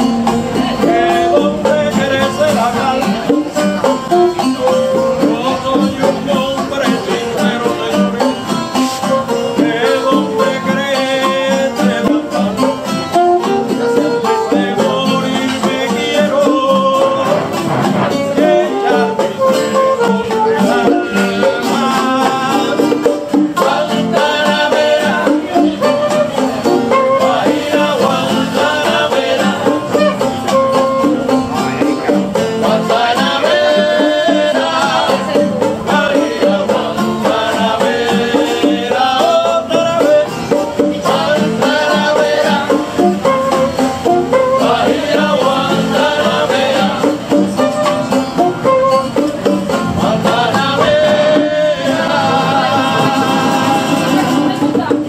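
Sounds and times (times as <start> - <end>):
hand drums: 0.0 - 55.0
strummed and plucked guitars: 0.0 - 55.0
saxophone: 3.0 - 6.3, 7.4 - 31.7, 41.0 - 54.8.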